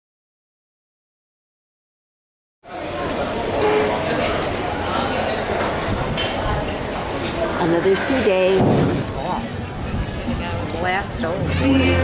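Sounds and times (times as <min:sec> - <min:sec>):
crowd chatter: 0:02.6 - 0:12.0
steady background noise: 0:02.6 - 0:12.0.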